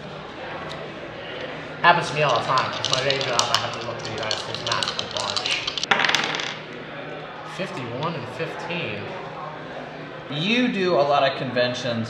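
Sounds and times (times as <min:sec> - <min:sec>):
dice clattering on wooden table: 0:02.0 - 0:06.6.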